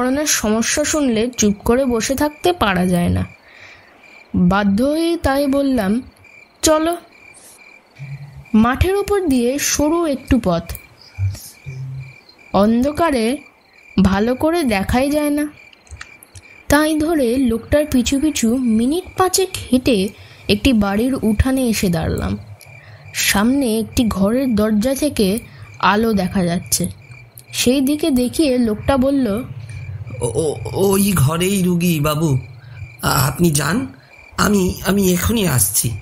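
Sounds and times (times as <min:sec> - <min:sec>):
crickets chirping: 0:00.0 - 0:36.0
person speaking: 0:08.0 - 0:13.4, 0:16.7 - 0:36.0.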